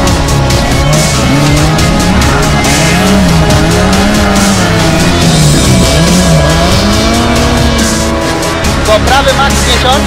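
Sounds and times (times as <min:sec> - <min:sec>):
backing music: 0:00.0 - 0:10.0
rally car engine revving: 0:00.0 - 0:10.0.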